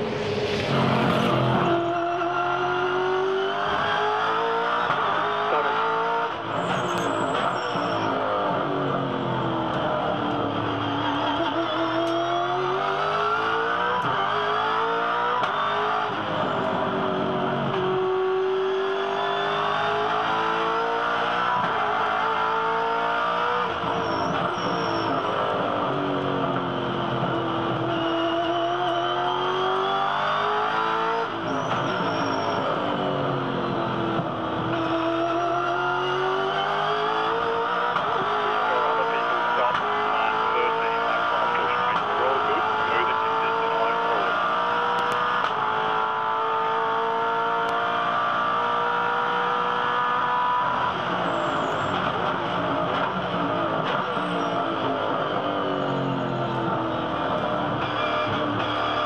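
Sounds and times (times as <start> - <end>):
race car engine revving: 0.0 - 59.0.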